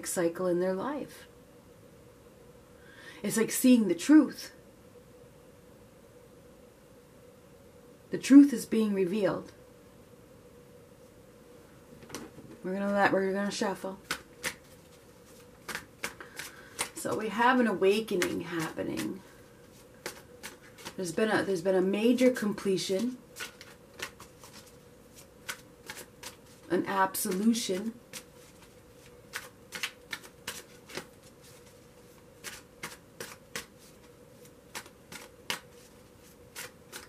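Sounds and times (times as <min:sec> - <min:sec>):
cards being shuffled: 0:14.0 - 0:17.3, 0:17.9 - 0:21.1, 0:22.9 - 0:37.0.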